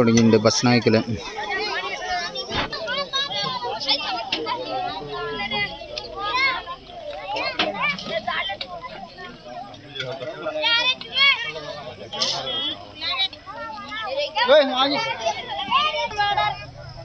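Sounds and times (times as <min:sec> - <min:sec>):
children talking and calling out: 0:00.0 - 0:17.0.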